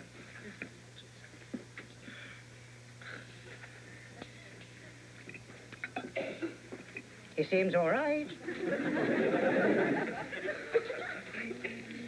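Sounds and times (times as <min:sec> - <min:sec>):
steady low hum: 0:00.0 - 0:12.0
faint vocal sound: 0:11.3 - 0:12.0.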